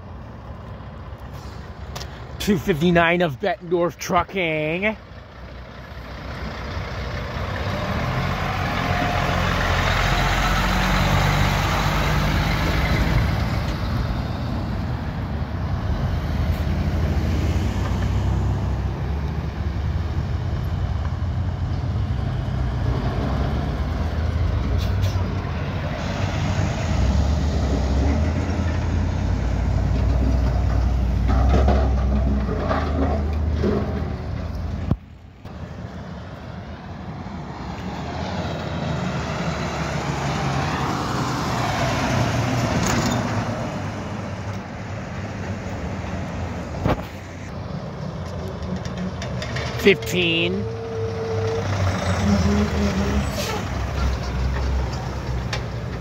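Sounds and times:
diesel truck engine: 0:00.0 - 0:56.0
road traffic passing: 0:00.0 - 0:56.0.

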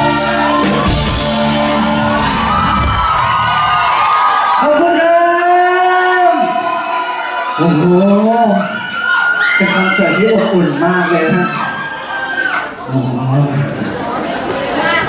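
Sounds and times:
live pop band playing: 0:00.0 - 0:05.0
crowd cheering and whooping: 0:00.0 - 0:12.8.

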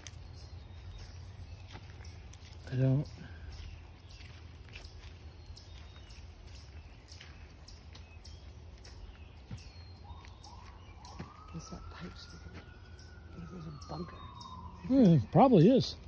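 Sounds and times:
footsteps crunching dry leaves: 0:00.0 - 0:14.8
faint bird chirps: 0:00.0 - 0:16.0
distant siren rising: 0:06.3 - 0:16.0.

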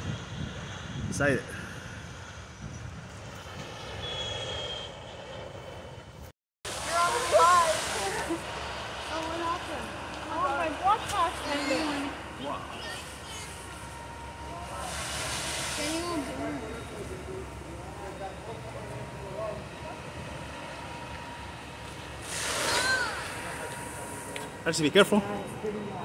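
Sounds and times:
outdoor background rush: 0:00.0 - 0:26.0
indistinct voices talking: 0:06.8 - 0:15.2, 0:15.8 - 0:26.0.

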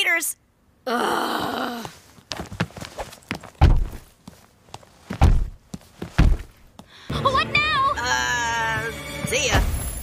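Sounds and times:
heavy sack thudding on stairs: 0:02.3 - 0:04.2, 0:05.0 - 0:06.7.

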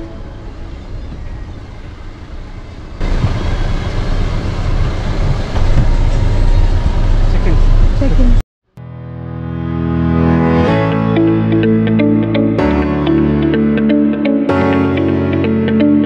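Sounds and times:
car rumbling from inside: 0:03.0 - 0:08.4.

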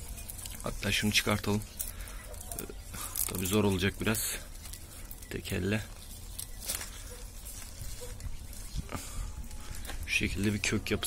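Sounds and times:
plants scraping and rustling: 0:00.0 - 0:11.0.

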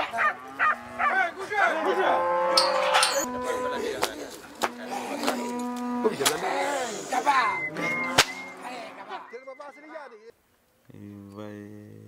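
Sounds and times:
cattle mooing: 0:00.0 - 0:04.0, 0:04.6 - 0:09.3.

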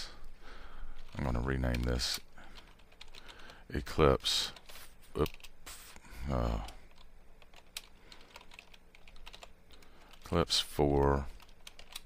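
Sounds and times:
keyboard typing: 0:02.5 - 0:03.6, 0:04.5 - 0:05.6, 0:06.6 - 0:10.4, 0:11.3 - 0:12.0.

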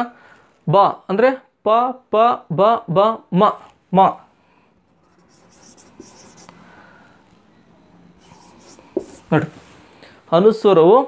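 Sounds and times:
marker scratching on whiteboard: 0:05.0 - 0:06.6, 0:08.2 - 0:09.5
marker tap: 0:05.2 - 0:06.6, 0:08.2 - 0:09.2.

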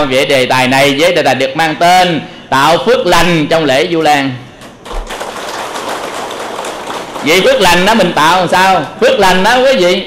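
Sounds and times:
audience applauding: 0:04.6 - 0:08.1.

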